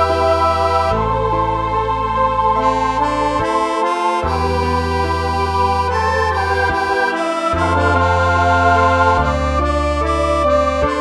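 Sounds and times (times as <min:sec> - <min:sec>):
sustained organ-like backing: 0:00.0 - 0:11.0
tremolo harmonica melody: 0:00.0 - 0:11.0.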